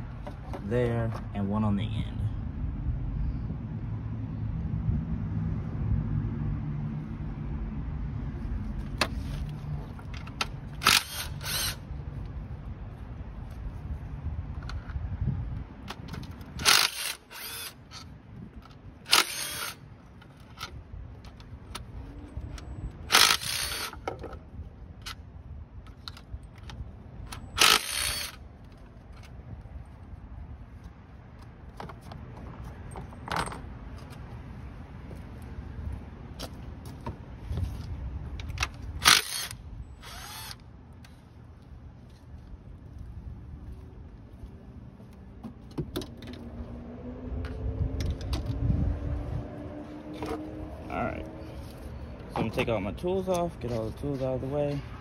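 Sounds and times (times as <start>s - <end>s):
impact driver bursts: 19.1s - 19.8s, 23.1s - 24.0s, 27.6s - 28.4s, 39.0s - 40.6s.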